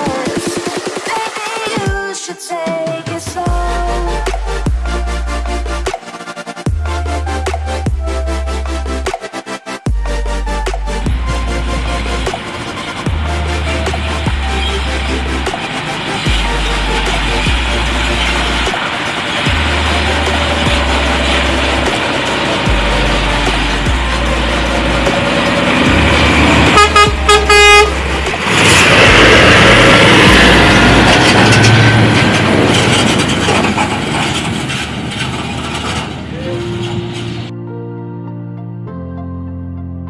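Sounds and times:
electronic music with heavy beat: 0:00.0 - 0:32.2
truck engine and tyres passing: 0:10.2 - 0:37.5
truck air horn blasts: 0:24.0 - 0:32.2.

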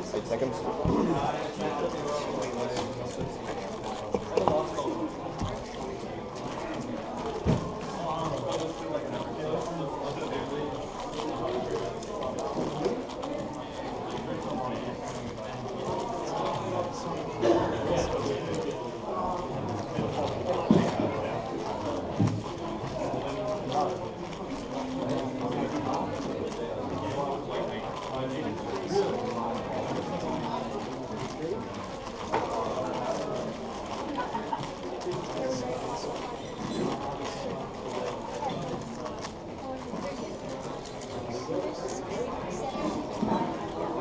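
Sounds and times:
murmur of background chatter: 0:00.0 - 0:44.0
people talking: 0:00.0 - 0:44.0.

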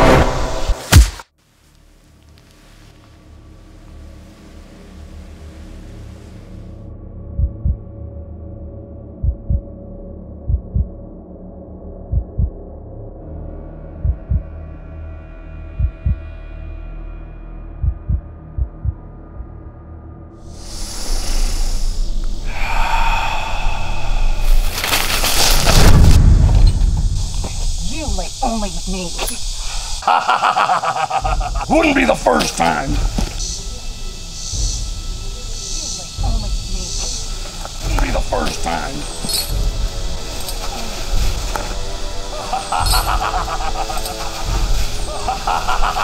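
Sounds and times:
low drone: 0:02.9 - 0:46.0
heartbeat thump: 0:07.3 - 0:07.9, 0:09.2 - 0:09.7, 0:10.4 - 0:11.0, 0:12.0 - 0:12.6, 0:14.0 - 0:14.6, 0:15.8 - 0:16.3, 0:17.8 - 0:19.5
scuffling on the ground: 0:24.4 - 0:27.8
low thuds: 0:24.4 - 0:28.4.

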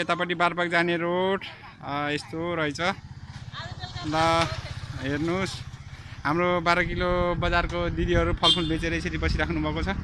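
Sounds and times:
vehicle engine idling: 0:01.5 - 0:07.4.

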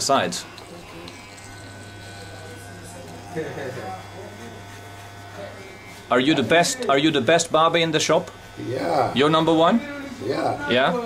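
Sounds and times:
electric hair clippers buzzing: 0:00.0 - 0:11.0.

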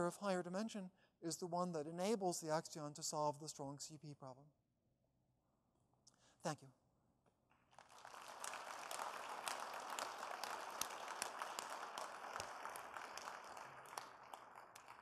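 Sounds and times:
audience applauding: 0:07.7 - 0:15.0.

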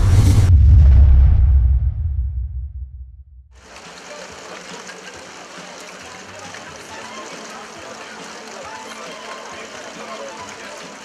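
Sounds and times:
faint murmur of people: 0:03.7 - 0:11.0.

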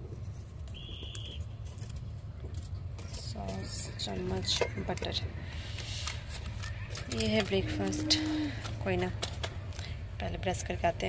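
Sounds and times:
plastic and foil packets crinkling: 0:00.6 - 0:10.0.

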